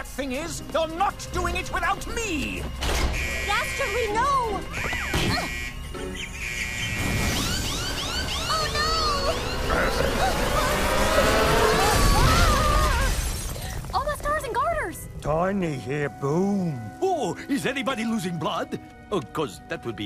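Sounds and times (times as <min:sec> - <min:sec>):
background music: 0:00.0 - 0:13.0, 0:13.7 - 0:20.0
cartoon zaps and whirrs: 0:06.8 - 0:13.5
cartoon characters crying out: 0:08.2 - 0:13.3.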